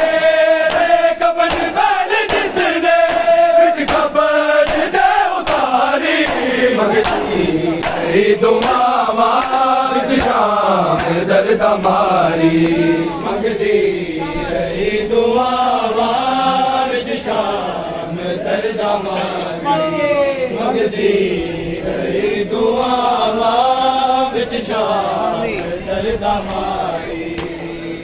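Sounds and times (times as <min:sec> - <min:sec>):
men chanting a lament: 0:00.0 - 0:28.0.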